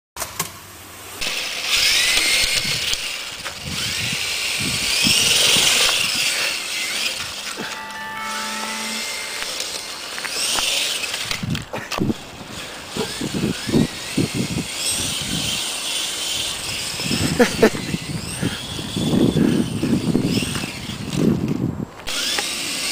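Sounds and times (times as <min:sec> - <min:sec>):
toy helicopter whining: 0:01.2 - 0:07.8, 0:12.1 - 0:21.2, 0:22.1 - 0:22.9
music: 0:07.6 - 0:10.6.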